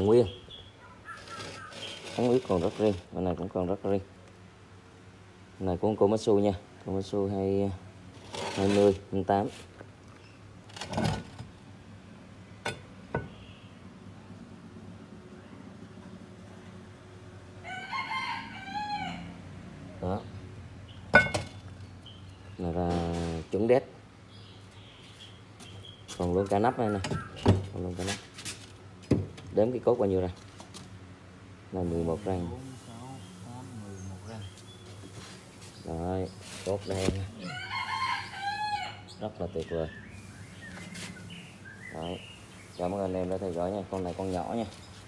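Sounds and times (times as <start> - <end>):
rooster crowing: 17.6 - 19.5, 37.4 - 39.1.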